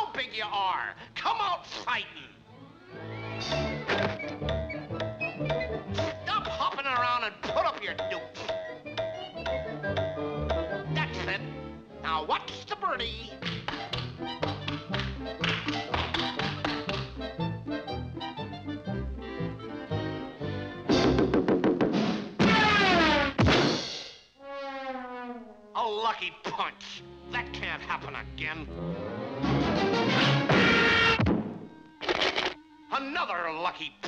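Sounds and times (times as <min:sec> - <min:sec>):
bouncy orchestral cartoon music: 0:02.4 - 0:32.0.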